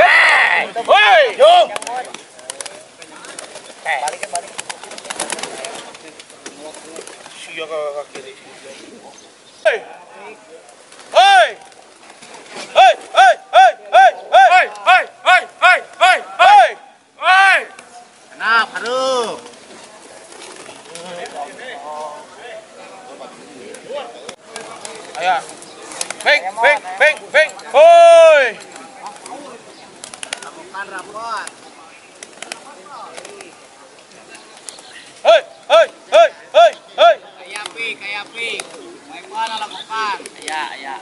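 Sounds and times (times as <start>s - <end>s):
man shouting a call: 0.0s - 1.8s, 9.6s - 10.0s, 11.1s - 11.6s, 12.8s - 17.7s, 26.3s - 28.6s, 35.2s - 37.2s
pigeon wings clattering: 0.7s - 8.3s, 10.6s - 13.2s, 18.6s - 21.6s, 23.6s - 27.8s, 28.5s - 35.0s, 37.4s - 41.0s
person calling loudly: 12.8s - 17.7s.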